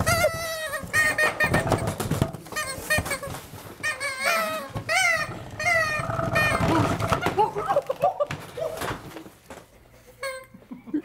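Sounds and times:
party blowers squawking: 0.0s - 7.8s.

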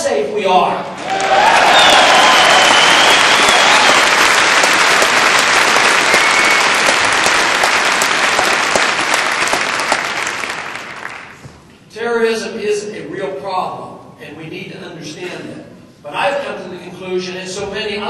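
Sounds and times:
audience applauding: 1.0s - 11.4s.

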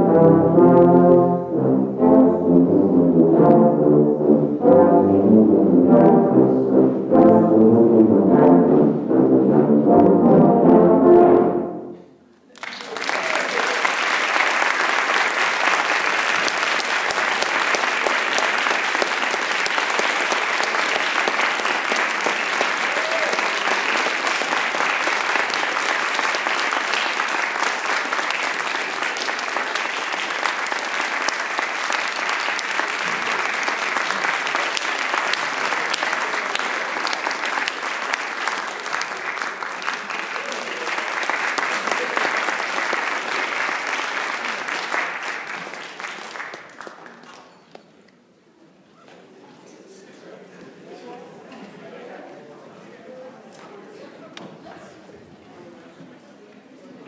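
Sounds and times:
audience applauding: 12.5s - 47.8s.

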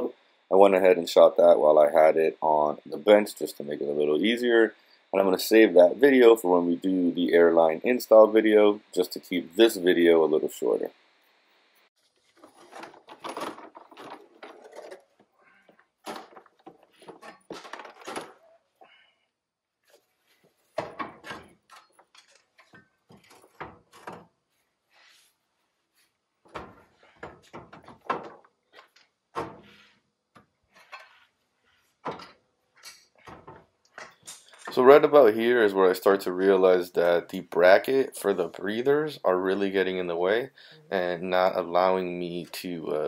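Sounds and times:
metal parts clunking and rattling: 12.3s - 18.6s, 20.5s - 24.5s, 26.4s - 31.3s, 32.0s - 34.7s.

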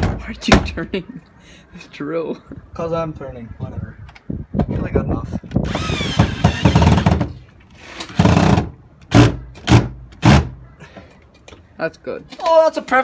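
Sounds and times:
power drill driving screws: 5.6s - 9.2s.

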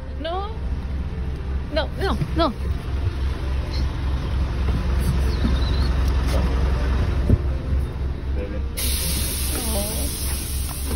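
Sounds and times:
bus engine idling: 0.0s - 10.9s
air hiss: 8.8s - 10.9s.

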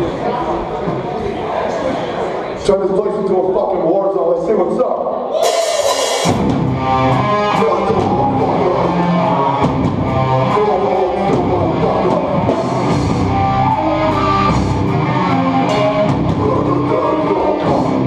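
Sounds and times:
hardcore band playing loud: 5.3s - 18.0s.

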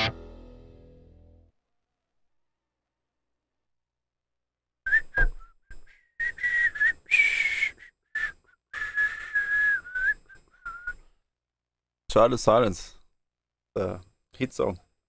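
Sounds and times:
man whistling a tune: 4.9s - 11.0s.

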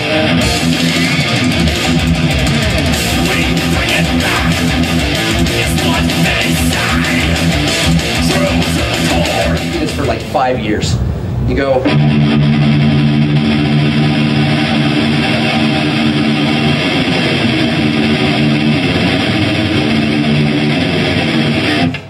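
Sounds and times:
distorted electric guitar riff: 0.0s - 22.0s.

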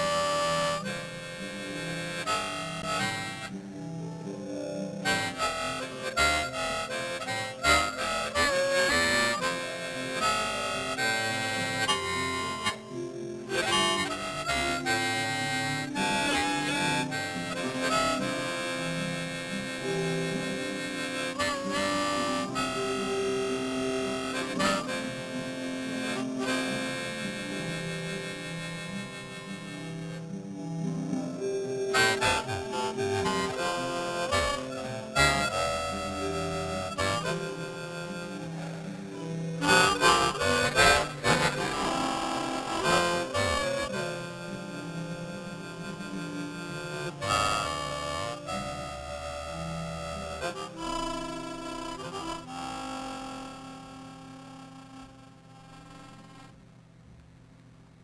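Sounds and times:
solo harmonica playing: 0.0s - 56.6s.

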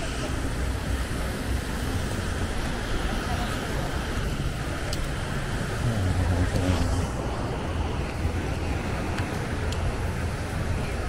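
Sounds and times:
surf hissing: 0.0s - 11.0s
wind rumble on microphone: 0.0s - 11.0s.

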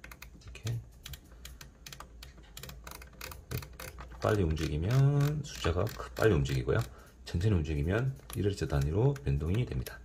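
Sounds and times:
dry clicks of a turning knob: 0.0s - 7.0s, 8.0s - 10.0s.

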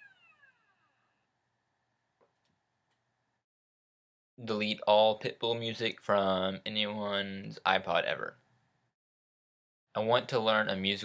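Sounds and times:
faint falling tone: 0.0s - 1.4s.

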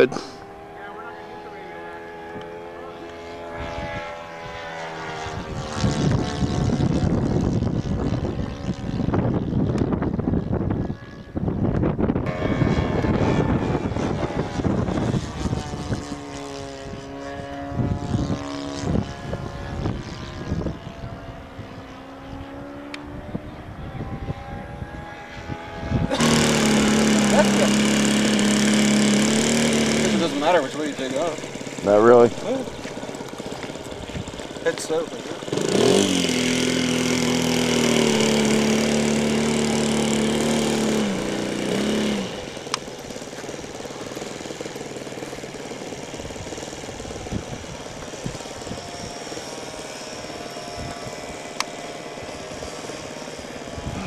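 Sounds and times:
model plane engine passing: 0.0s - 54.0s
steady model aircraft engine: 0.0s - 54.0s.

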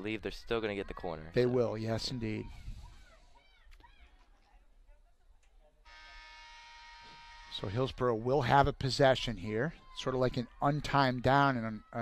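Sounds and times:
scoreboard horn buzzing: 5.9s - 8.2s.

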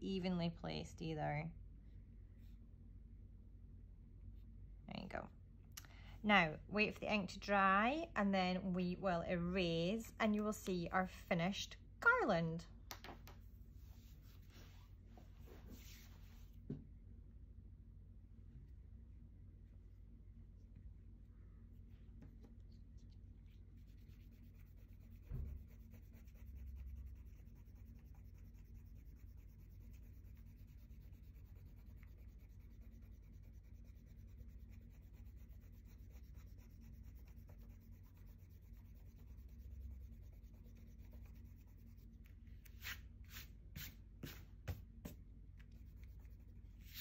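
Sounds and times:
eraser rubbing on paper: 23.8s - 44.4s, 45.8s - 47.0s
thump: 25.3s - 25.7s.

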